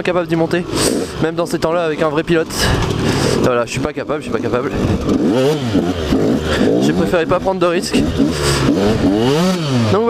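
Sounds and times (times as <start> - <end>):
motocross engine revving: 0.0 - 10.0.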